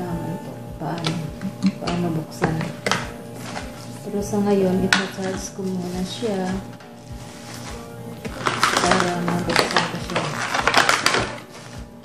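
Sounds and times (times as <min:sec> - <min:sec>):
background music: 0:00.0 - 0:12.0
plastic bags crinkling: 0:04.9 - 0:12.0.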